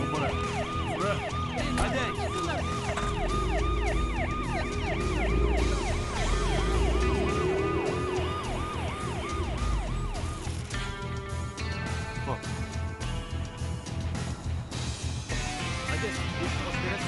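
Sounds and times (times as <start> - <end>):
police siren yelping: 0.0 - 11.0
low vehicle rumble: 2.6 - 10.7.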